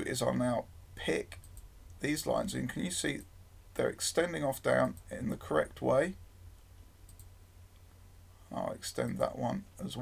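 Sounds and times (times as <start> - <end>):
computer mouse clicks: 7.1 - 7.3.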